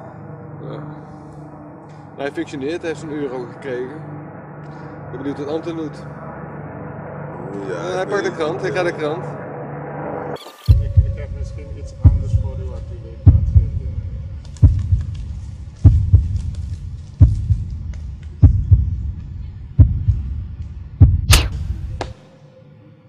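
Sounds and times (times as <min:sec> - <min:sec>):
deep heartbeat thumps: 0:10.7 - 0:22.1
sharp hit: 0:21.1 - 0:22.1.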